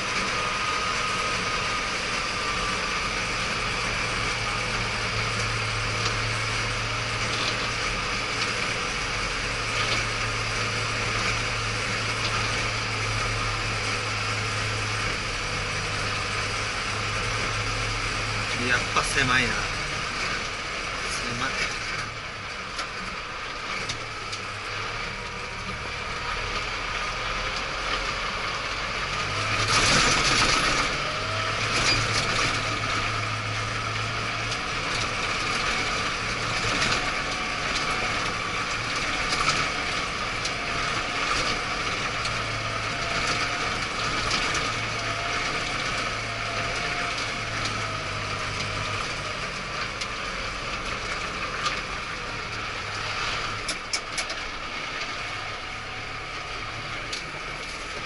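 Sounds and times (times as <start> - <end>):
cab rattling: 0.0 - 58.0
tractor engine and drivetrain whine: 0.0 - 58.0.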